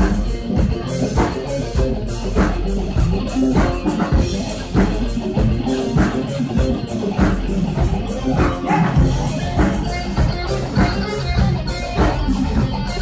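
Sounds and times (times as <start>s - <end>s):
drums keeping a steady beat: 0.0s - 13.0s
live rock band playing: 0.0s - 13.0s.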